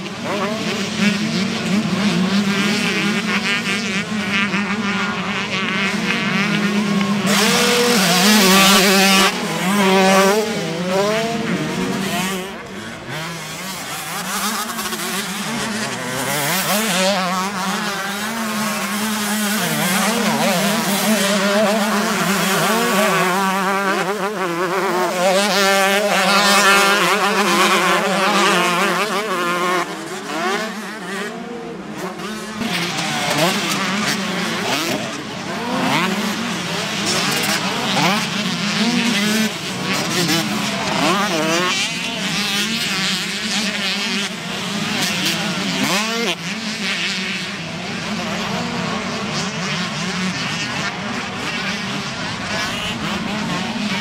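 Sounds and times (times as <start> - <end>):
motocross bikes revving: 0.0 - 54.0.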